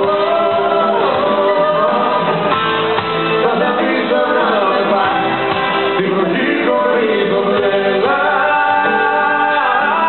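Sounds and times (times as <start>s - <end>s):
band accompaniment: 0.0s - 10.0s
muffled audience: 0.0s - 10.0s.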